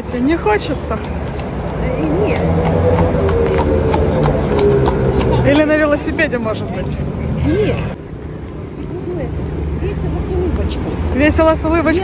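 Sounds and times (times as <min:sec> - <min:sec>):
horse hooves clip-clopping on asphalt: 0:00.0 - 0:06.9
low hum of traffic: 0:00.0 - 0:12.0.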